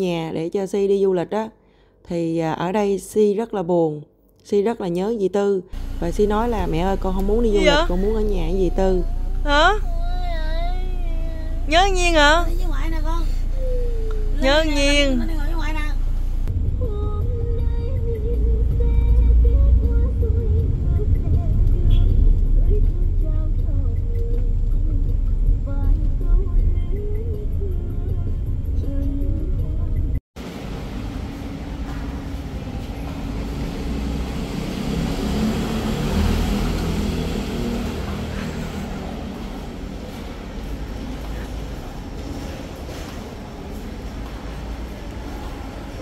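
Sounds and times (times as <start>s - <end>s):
echoey parking garage hiss: 5.7s - 21.0s, 30.4s - 46.0s
van engine and tyres rumbling: 5.8s - 46.0s.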